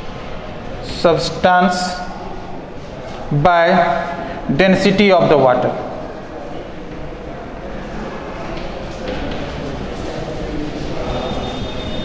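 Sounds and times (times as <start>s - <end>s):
chalk writing on chalkboard: 8.2s - 12.0s.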